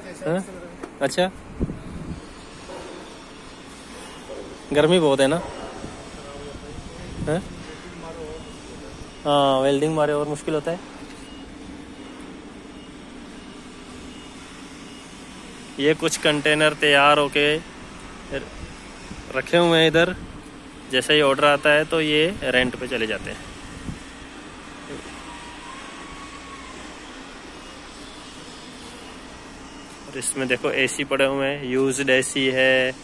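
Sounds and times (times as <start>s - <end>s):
outdoor background rush: 0.0s - 33.0s
faint thin whistle: 11.1s - 11.5s.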